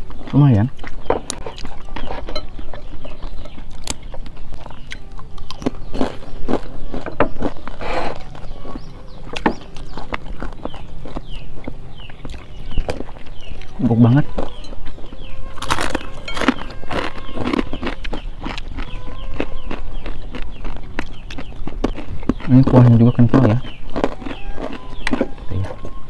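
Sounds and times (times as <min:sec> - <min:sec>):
chewing crisp crackers: 0:00.0 - 0:26.0.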